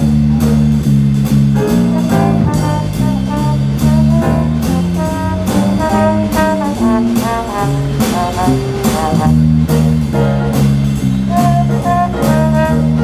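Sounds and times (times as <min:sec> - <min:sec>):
bass and guitar riff: 0:00.0 - 0:13.0
drum kit beat with cymbals: 0:00.0 - 0:13.0
piano: 0:00.0 - 0:13.0
trombone: 0:00.0 - 0:13.0.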